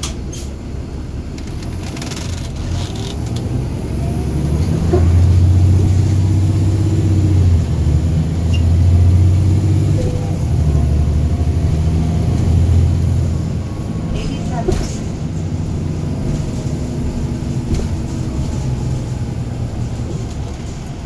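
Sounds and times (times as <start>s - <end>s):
bus diesel engine droning: 0.0s - 21.0s.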